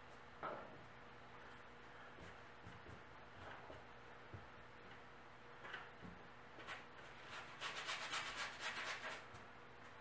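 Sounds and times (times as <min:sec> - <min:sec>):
paintbrush scrubbing canvas: 0:06.6 - 0:09.3.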